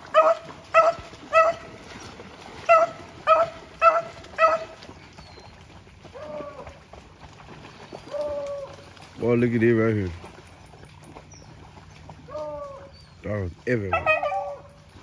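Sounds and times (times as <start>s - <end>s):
dog drawn-out call: 0.0s - 6.8s, 7.9s - 8.9s, 11.2s - 13.2s, 13.8s - 15.0s
hound barking: 0.1s - 1.7s, 2.6s - 4.8s, 13.8s - 14.8s.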